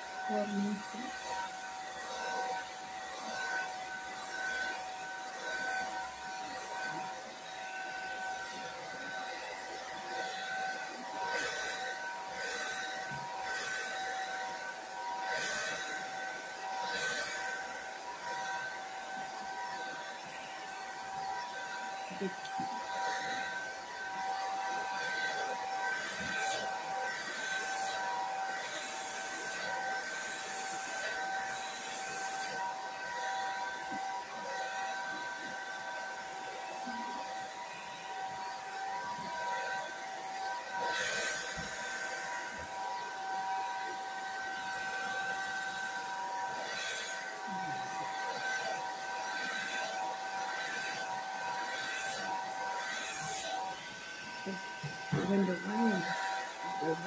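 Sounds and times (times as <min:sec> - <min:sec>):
hair dryer running: 0:00.0 - 0:57.0.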